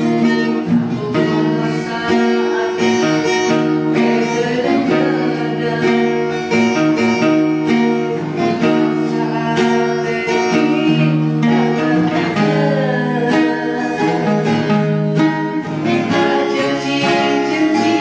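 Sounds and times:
plucked guitar: 0:00.0 - 0:18.0.

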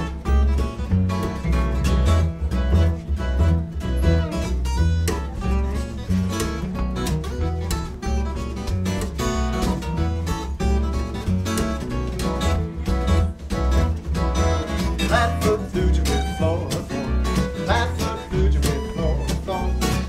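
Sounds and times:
acoustic guitars picking: 0:00.0 - 0:20.0
upright bass beat: 0:00.0 - 0:20.0.

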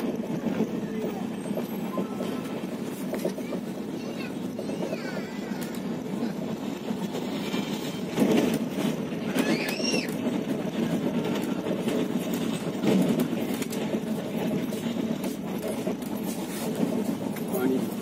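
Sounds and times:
train rumbling on track: 0:00.0 - 0:18.0.

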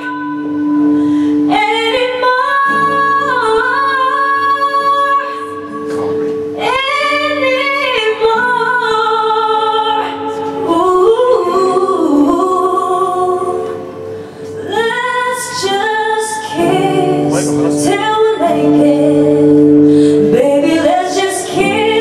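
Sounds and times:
woman singing: 0:00.0 - 0:05.9, 0:06.6 - 0:22.0
strummed acoustic guitar: 0:00.0 - 0:22.0.

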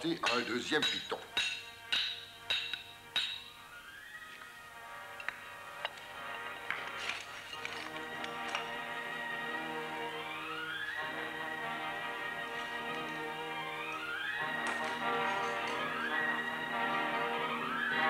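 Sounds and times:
background music rising tones: 0:00.0 - 0:18.0
hammer striking metal piton: 0:00.1 - 0:03.6.

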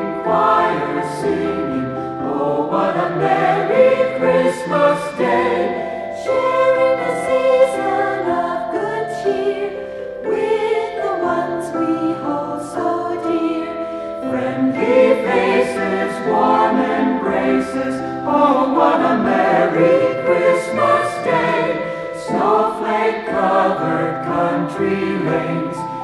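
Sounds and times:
choir singing: 0:00.0 - 0:26.0.

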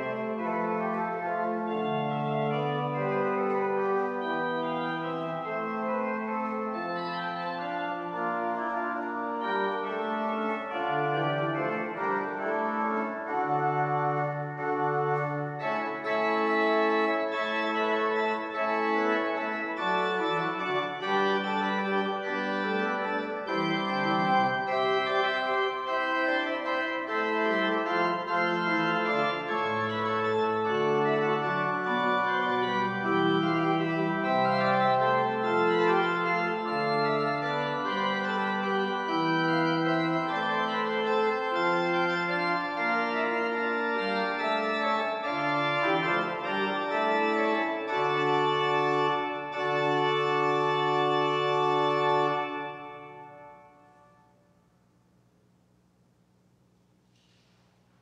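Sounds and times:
pipe organ playing: 0:00.0 - 0:54.4.

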